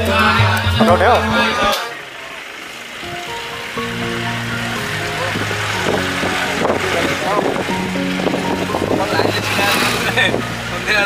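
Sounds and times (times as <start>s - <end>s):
song with singing voice: 0.0s - 2.0s.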